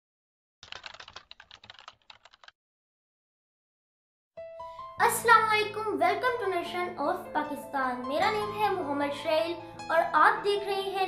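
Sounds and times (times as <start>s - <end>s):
rapid keyboard typing: 0.6s - 2.6s.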